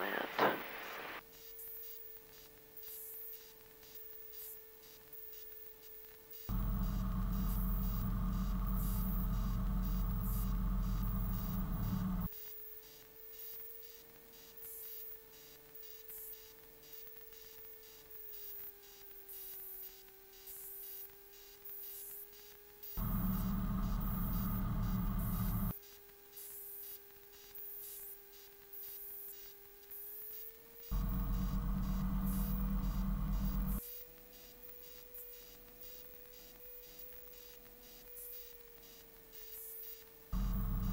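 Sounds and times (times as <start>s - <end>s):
fuller engine and cabin noise: 6.5s - 12.3s, 23.0s - 25.7s, 30.9s - 33.8s, 40.4s - 40.9s
light aircraft engine: 6.5s - 12.3s, 23.0s - 25.7s, 30.9s - 33.8s, 40.4s - 40.9s.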